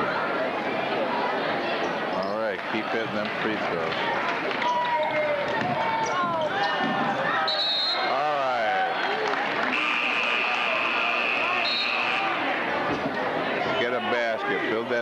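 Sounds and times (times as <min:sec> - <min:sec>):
referee's whistle blast: 0:07.4 - 0:08.1, 0:09.7 - 0:12.4
people shouting: 0:09.7 - 0:12.9.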